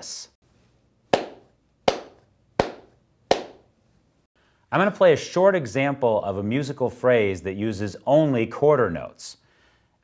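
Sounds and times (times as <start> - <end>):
hand claps: 1.2 - 3.7.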